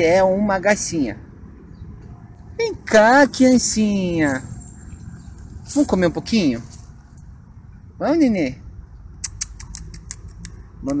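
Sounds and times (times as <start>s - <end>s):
person making kissing squeaks: 9.2s - 10.5s.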